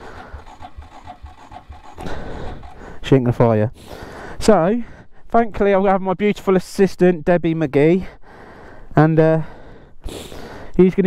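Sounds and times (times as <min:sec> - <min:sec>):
engine cranking without starting: 0:00.0 - 0:03.6.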